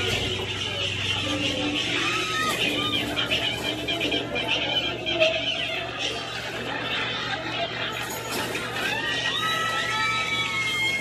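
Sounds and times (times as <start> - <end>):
busy restaurant background voices: 0.0 - 11.0.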